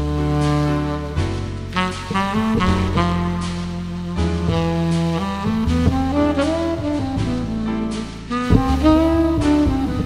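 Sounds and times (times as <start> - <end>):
backing rhythm section with walking bass: 0.0 - 10.0
tenor saxophone jazz ballad: 0.0 - 10.0.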